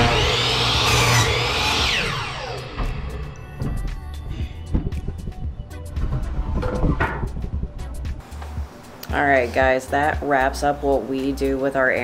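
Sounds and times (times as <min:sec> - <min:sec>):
saw cutting wood with high whine: 0:00.0 - 0:04.4.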